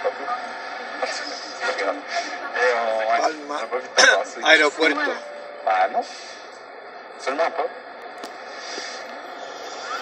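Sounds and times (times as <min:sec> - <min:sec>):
fm radio hiss: 0:00.0 - 0:10.0.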